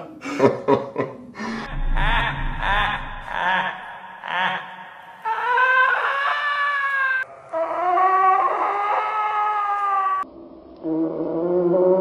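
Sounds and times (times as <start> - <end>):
person laughing: 0.2 - 4.8
long wailing tones: 1.6 - 4.4.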